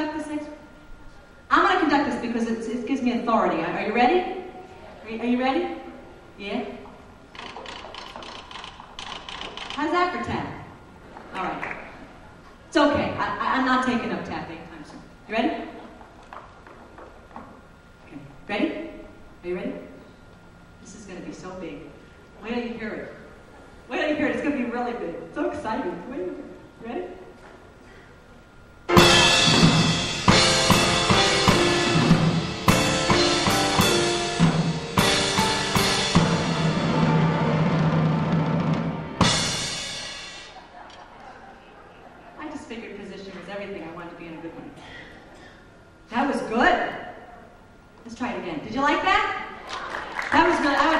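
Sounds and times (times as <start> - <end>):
grand piano chords: 28.8 - 40.6
drum and cymbal hits: 28.9 - 40.8.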